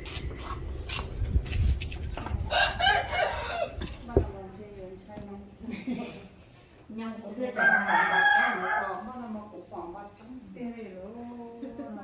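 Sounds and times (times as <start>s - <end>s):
rooster crowing: 2.5s - 3.8s, 7.6s - 9.1s.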